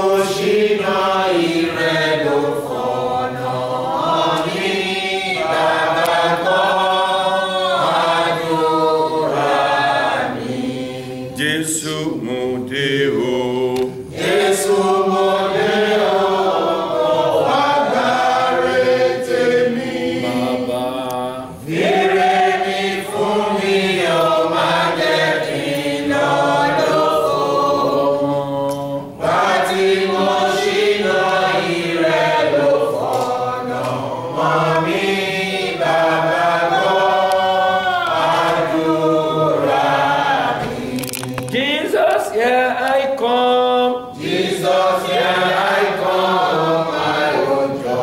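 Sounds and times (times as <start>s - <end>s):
congregation singing: 0.0s - 48.0s.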